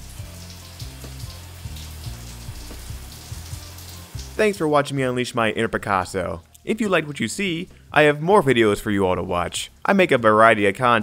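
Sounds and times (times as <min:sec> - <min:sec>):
shower water spraying: 0:00.0 - 0:04.7
soft music with bass line: 0:00.0 - 0:10.5.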